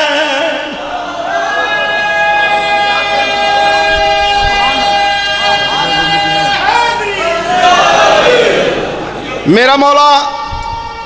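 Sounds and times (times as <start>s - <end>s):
man singing long high note: 0.0s - 7.6s.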